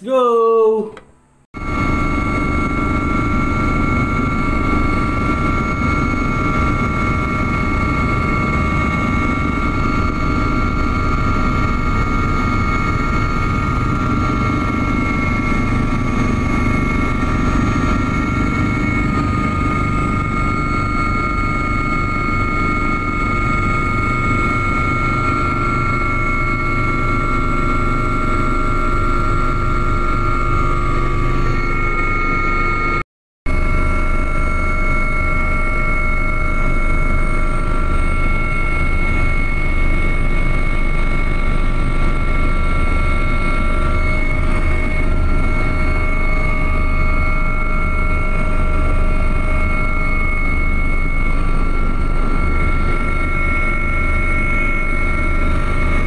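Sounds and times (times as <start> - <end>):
helicopter engine and rotor noise: 1.6 - 56.0
high-pitched whine: 1.6 - 56.0.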